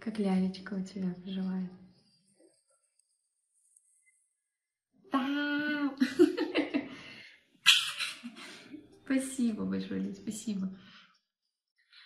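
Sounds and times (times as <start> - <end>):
woman sneezing: 7.7 - 8.5.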